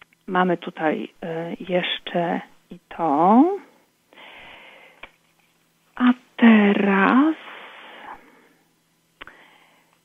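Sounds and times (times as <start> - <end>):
breath close to microphone: 4.1 - 5.0, 9.2 - 10.0.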